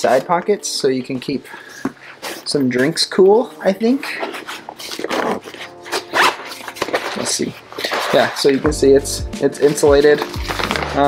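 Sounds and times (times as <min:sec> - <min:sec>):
fabric rustling and rubbing: 0:02.0 - 0:08.7.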